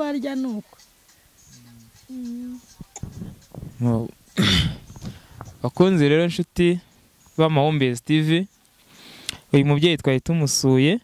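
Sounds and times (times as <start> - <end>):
person speaking: 0.0 - 0.8, 1.4 - 8.5
person clearing throat: 4.4 - 4.9.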